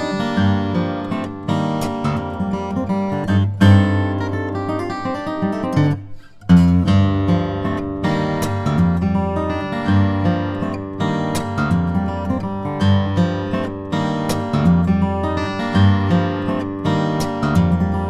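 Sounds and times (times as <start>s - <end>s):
fingerstyle acoustic guitar: 0.0s - 18.0s.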